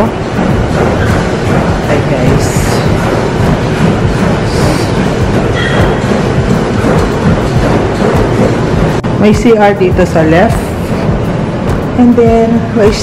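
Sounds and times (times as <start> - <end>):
people jogging on treadmills: 0.0 - 13.0
treadmills running: 0.0 - 13.0.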